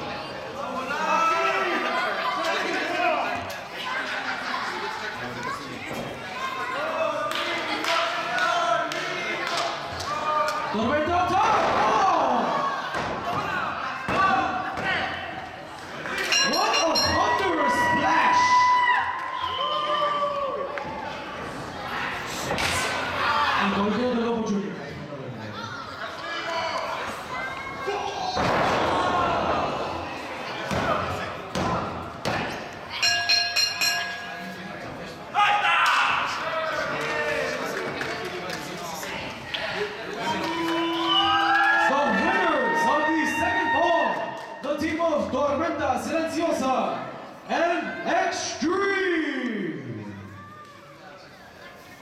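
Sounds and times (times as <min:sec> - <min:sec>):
people shouting: 0:35.3 - 0:36.6.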